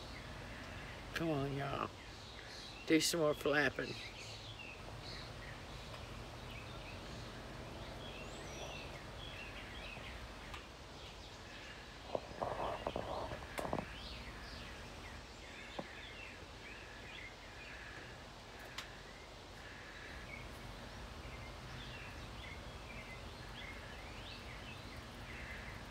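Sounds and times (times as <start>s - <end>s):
low background hum: 0.0s - 25.9s
small birds chirping: 0.0s - 25.9s.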